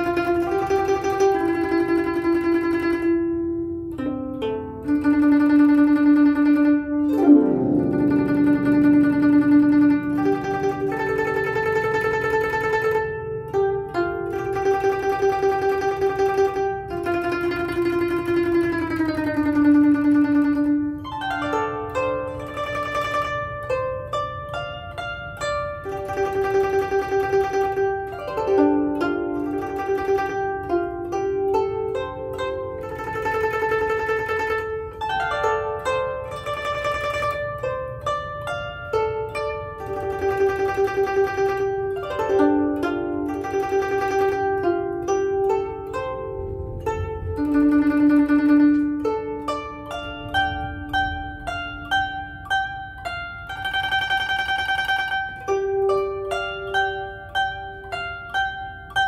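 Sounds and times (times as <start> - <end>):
glissando across zither strings: 0.0 - 59.0
plucked zither melody: 0.0 - 59.0.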